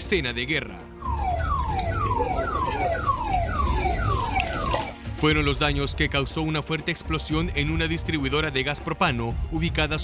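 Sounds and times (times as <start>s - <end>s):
electronic alarm falling sweeps: 1.0s - 5.0s.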